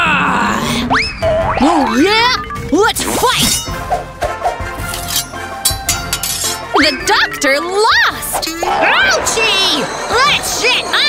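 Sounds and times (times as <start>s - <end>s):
background music: 0.5s - 11.0s
sharp metallic clinks: 3.4s - 4.0s, 4.8s - 6.7s.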